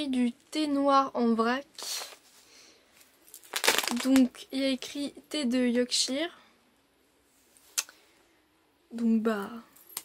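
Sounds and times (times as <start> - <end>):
tea packet crinkling: 3.3 - 4.4.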